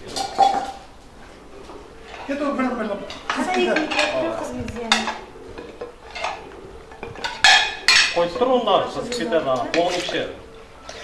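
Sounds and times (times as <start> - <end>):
ceramic plates clinking: 0.0 - 0.9, 2.0 - 11.0
plates clattering: 0.0 - 11.0
utensil scraping in a pot: 3.1 - 8.8.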